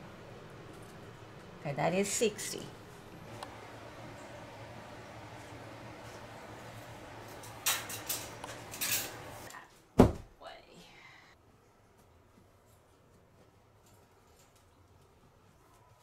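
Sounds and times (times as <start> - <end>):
low steady hum: 0.0 - 12.9.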